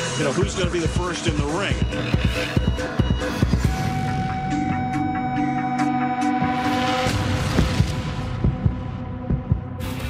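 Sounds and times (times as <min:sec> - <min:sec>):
deep heartbeat-like thumps: 0:07.4 - 0:09.9.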